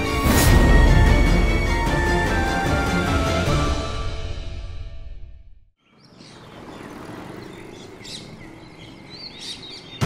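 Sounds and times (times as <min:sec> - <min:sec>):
birds chirping: 0:05.8 - 0:10.0.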